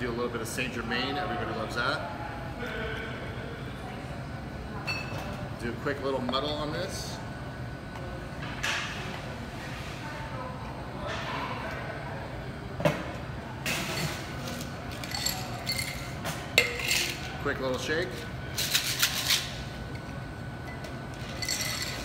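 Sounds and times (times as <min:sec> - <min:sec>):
muddler in metal shaker tin: 0:14.0 - 0:17.3, 0:21.2 - 0:22.0
clinks of glass and metal: 0:14.9 - 0:17.2, 0:20.6 - 0:22.0.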